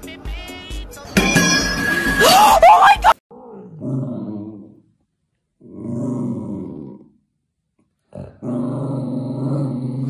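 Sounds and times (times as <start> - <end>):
cat growling low: 3.3 - 4.8, 5.6 - 7.2, 8.1 - 10.0.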